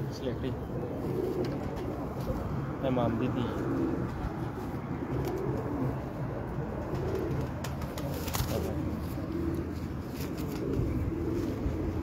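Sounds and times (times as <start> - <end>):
pigeons cooing: 0.0 - 12.0.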